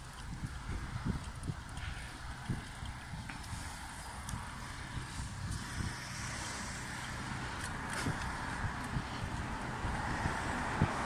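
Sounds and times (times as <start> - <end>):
low traffic rumble: 0.0 - 11.0
traffic tyres and engines hissing: 0.0 - 11.0.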